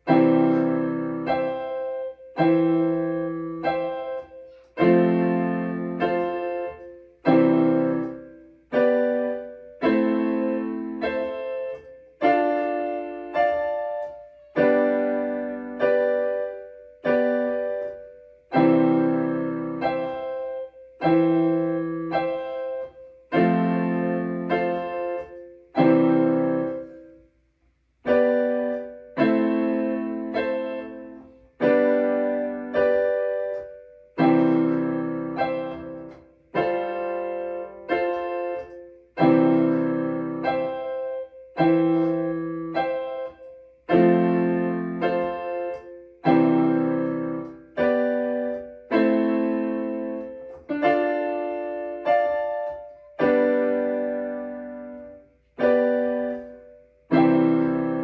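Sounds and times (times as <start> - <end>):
electronic keyboard playing gospel chords: 0.0 - 27.2, 28.0 - 58.0.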